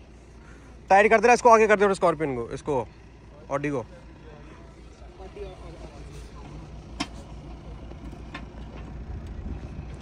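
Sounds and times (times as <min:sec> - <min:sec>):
faint talking voices: 0:02.8 - 0:08.3
low rumble: 0:04.8 - 0:10.0.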